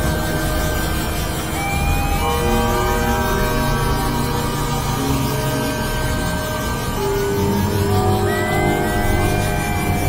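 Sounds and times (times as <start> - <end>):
electronic synthesizer drone: 0.0 - 10.0.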